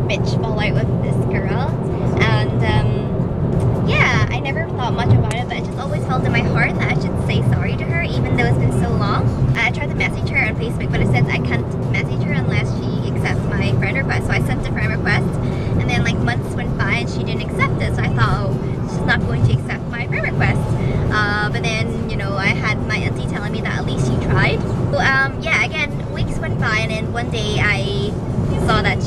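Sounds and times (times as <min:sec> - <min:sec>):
woman talking: 0:00.0 - 0:03.0, 0:03.8 - 0:29.0
road and engine noise: 0:00.0 - 0:29.0.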